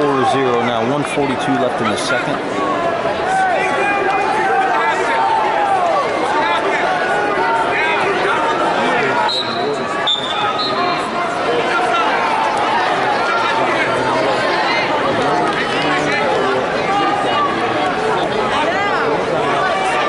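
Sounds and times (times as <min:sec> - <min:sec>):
crowd and coaches calling out: 0:00.0 - 0:20.0.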